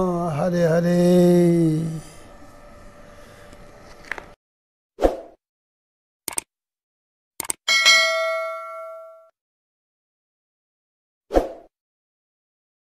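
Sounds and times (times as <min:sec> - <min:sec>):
mouse clicks: 0:06.3 - 0:06.5
bell ding: 0:07.7 - 0:09.3.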